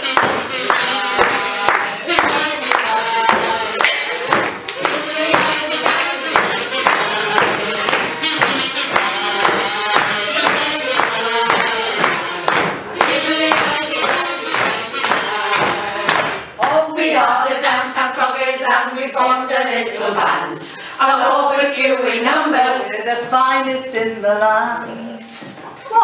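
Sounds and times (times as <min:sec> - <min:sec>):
marching tune melody: 0:00.0 - 0:16.4
frame drum beating: 0:00.0 - 0:16.5.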